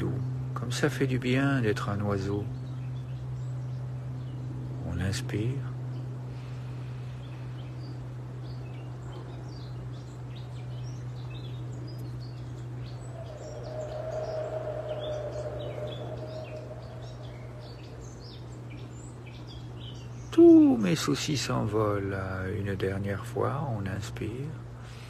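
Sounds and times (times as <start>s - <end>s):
birds chirping: 0.0s - 25.0s
steady low hum: 0.0s - 25.0s
soft drawn-out sound: 12.7s - 18.7s.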